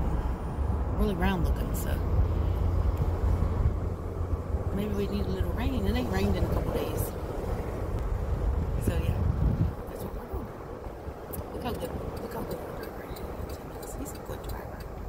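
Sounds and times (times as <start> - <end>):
car cabin road and engine noise: 0.0 - 15.0.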